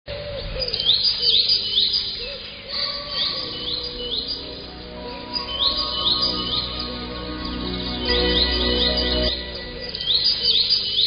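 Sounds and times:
bird chirping: 0.1s - 11.0s
soft instrumental music: 3.4s - 11.0s.

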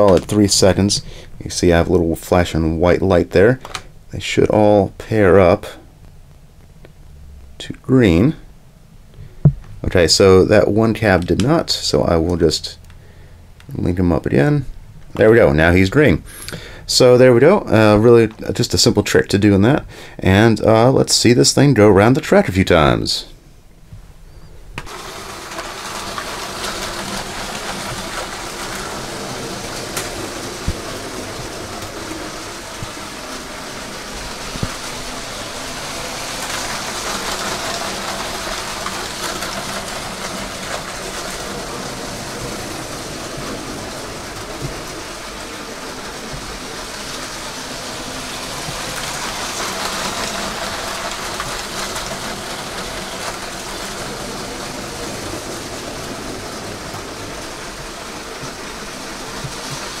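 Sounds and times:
toy train rolling on plastic track: 0.0s - 2.5s, 24.8s - 60.0s
toy train motor whirring: 24.8s - 60.0s.

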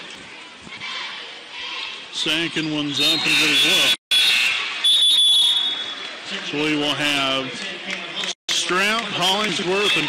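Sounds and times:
gym crowd noise: 0.0s - 10.0s
referee's whistle: 3.0s - 6.0s.

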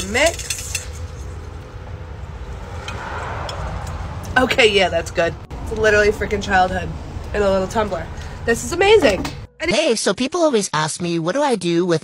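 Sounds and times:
low steady rumble: 0.0s - 9.9s.

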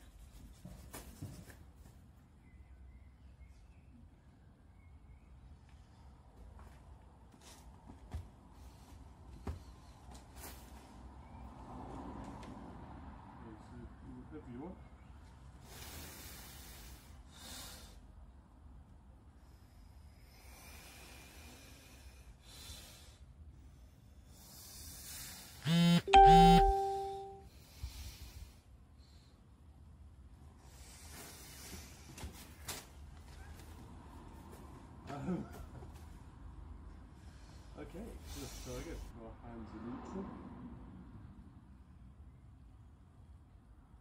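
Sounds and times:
two-note electronic chime: 26.0s - 27.4s.

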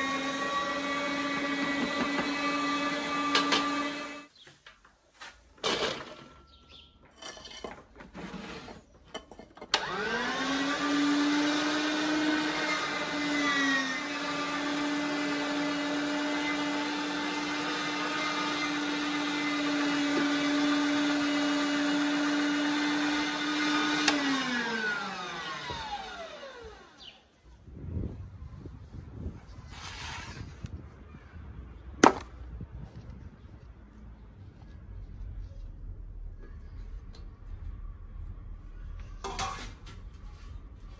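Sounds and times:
electric meat grinder motor: 0.0s - 4.3s, 9.8s - 27.1s.

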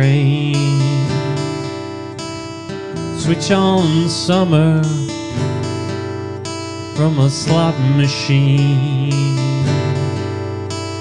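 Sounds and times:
acoustic guitar chord strummed: 0.0s - 11.0s.

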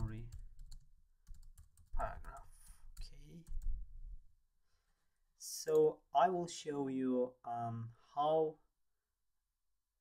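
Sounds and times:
typing on computer keyboard: 0.1s - 3.8s.

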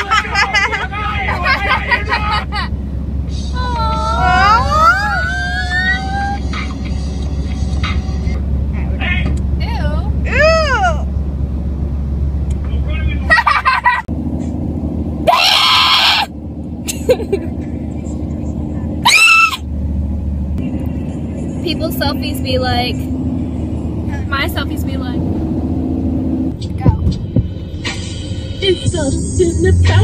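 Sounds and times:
car cabin rumble: 0.0s - 30.0s.

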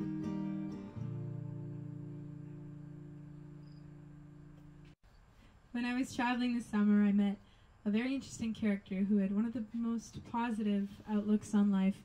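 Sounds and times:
acoustic guitar chord ringing: 0.0s - 5.0s.

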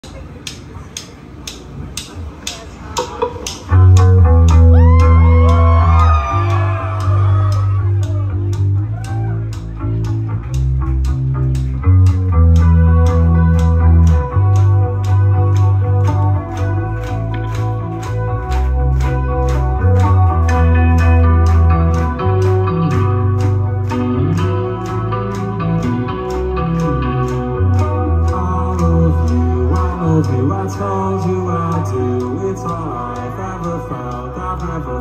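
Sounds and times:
bass guitar: 0.0s - 35.0s
steady ticking pulse: 0.1s - 4.7s, 7.5s - 35.0s
electric guitar chords with pitch bends: 2.5s - 35.0s.

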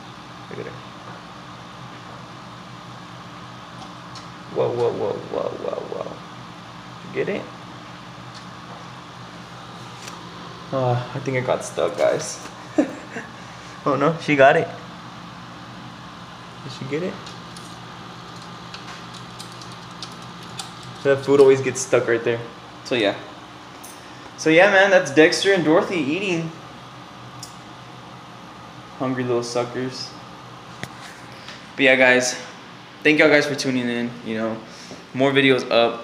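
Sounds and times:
low mechanical hum: 0.0s - 36.0s
room noise hiss: 0.0s - 36.0s.

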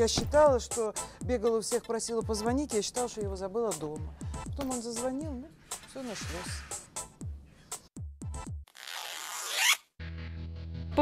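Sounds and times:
background music with bass line: 8.0s - 8.6s, 10.0s - 11.0s.

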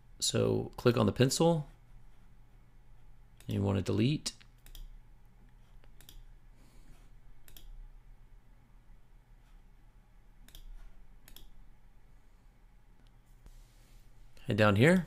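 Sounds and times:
low steady hum: 0.0s - 15.0s
computer mouse clicks: 4.4s - 6.3s, 7.4s - 7.8s, 10.4s - 11.6s.

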